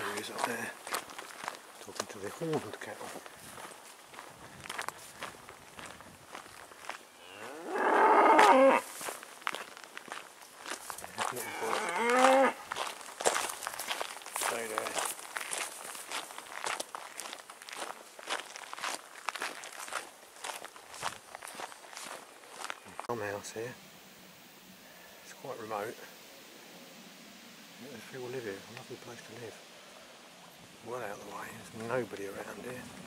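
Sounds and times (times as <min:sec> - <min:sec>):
scuffing steps on path: 0:00.0 - 0:23.1
cattle mooing: 0:07.2 - 0:08.8, 0:11.3 - 0:12.6.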